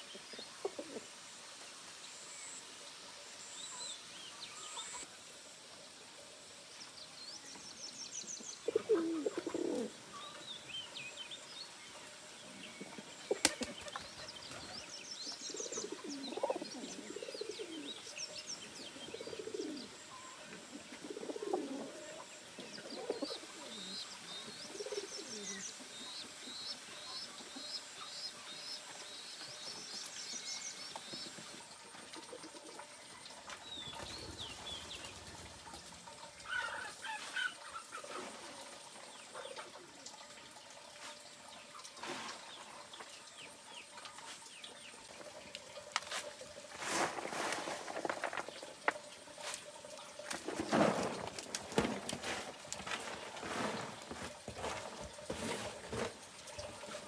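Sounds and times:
pigeons cooing: 0:00.0 - 0:01.1, 0:08.6 - 0:10.0, 0:15.5 - 0:18.1, 0:18.9 - 0:25.6
wings fluttering: 0:13.3 - 0:14.8.

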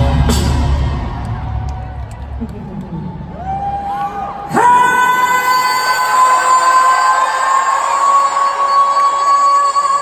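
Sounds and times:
band heavy bass: 0:00.0 - 0:03.3
crowd noise: 0:00.0 - 0:10.0.

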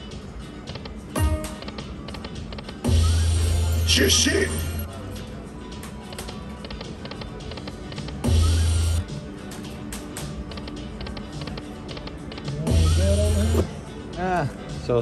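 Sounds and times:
slot machine music: 0:00.0 - 0:05.1, 0:05.8 - 0:14.4.

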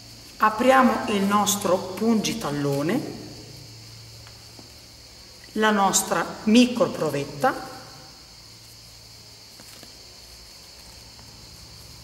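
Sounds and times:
high-pitched hiss: 0:00.0 - 0:12.0.

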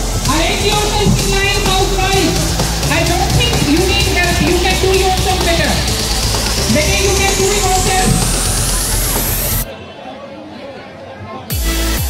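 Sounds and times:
music: 0:00.0 - 0:09.7, 0:11.5 - 0:12.0
background chatter: 0:00.0 - 0:11.6.

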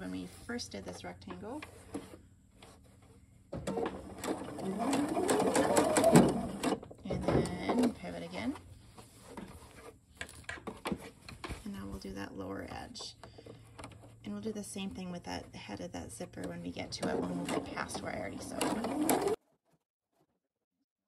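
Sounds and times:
electric sewing machine stitching: 0:03.6 - 0:06.8, 0:16.4 - 0:19.4.

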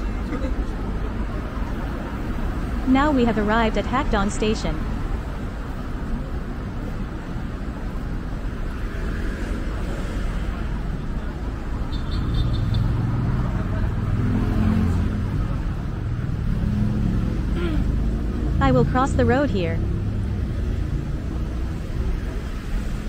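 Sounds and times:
cars passing: 0:00.0 - 0:23.0.

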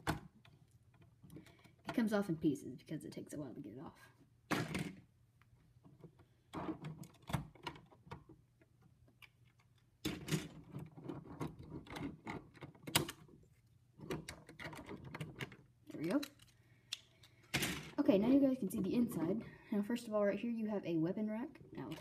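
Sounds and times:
plastic bricks clicking and rattling: 0:21.8 - 0:22.0.

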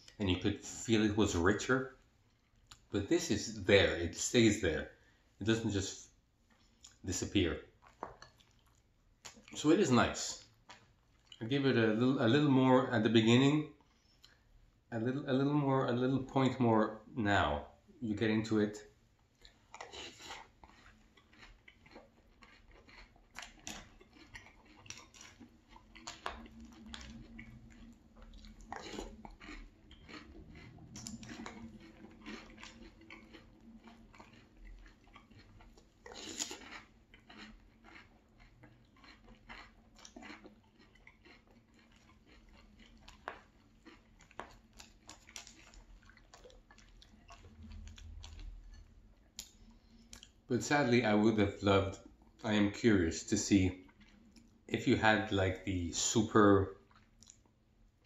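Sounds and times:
person chewing cereal crunchily: 0:05.8 - 0:12.6, 0:19.2 - 0:50.8, 0:53.7 - 0:55.4, 0:56.0 - 0:57.6.

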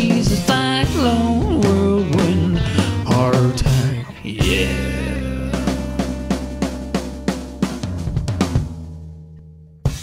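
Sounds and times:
blues-rock song: 0:00.0 - 0:09.3
drum kit bass and snare hits: 0:03.0 - 0:09.2, 0:09.8 - 0:10.0.

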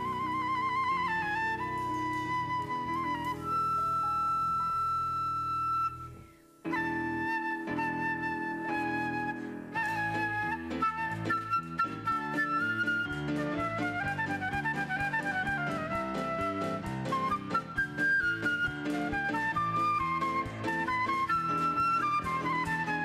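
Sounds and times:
flute playing a melody: 0:00.0 - 0:23.0.

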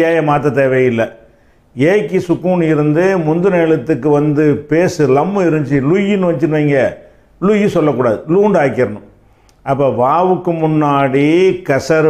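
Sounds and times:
man reciting in chant-like voice: 0:00.0 - 0:01.2, 0:01.8 - 0:09.1, 0:09.7 - 0:12.0.

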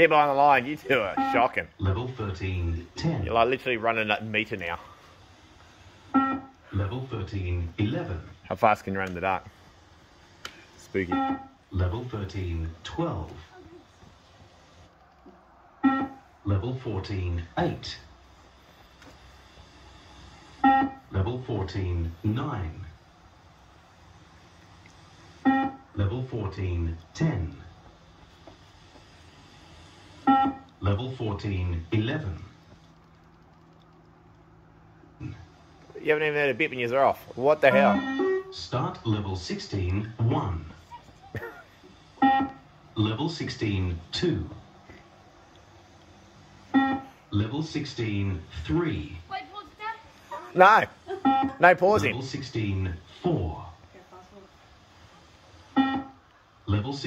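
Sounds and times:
short loud electronic beep: 0:37.7 - 0:38.5.

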